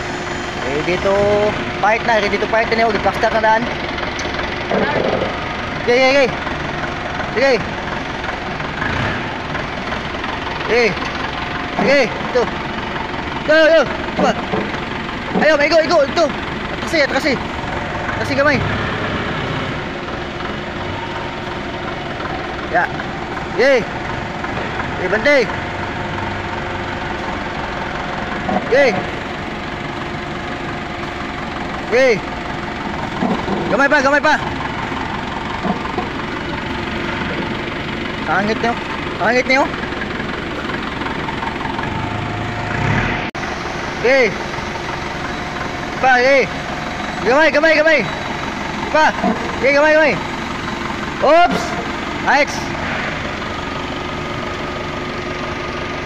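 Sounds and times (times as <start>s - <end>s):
factory machinery running: 0.0s - 56.0s.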